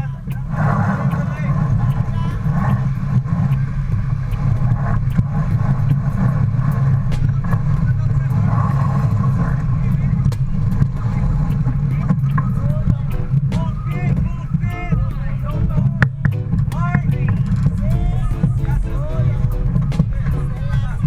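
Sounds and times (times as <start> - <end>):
sharp clicks: 0.0 - 20.8
faint crew voices: 0.0 - 21.0
water rushing alongside: 0.0 - 21.0
wind buffeting microphone: 0.0 - 21.0.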